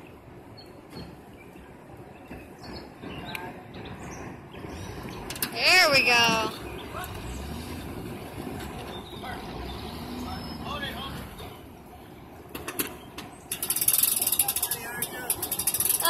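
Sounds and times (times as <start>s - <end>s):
hand winch ratchet clicking: 13.5s - 16.0s.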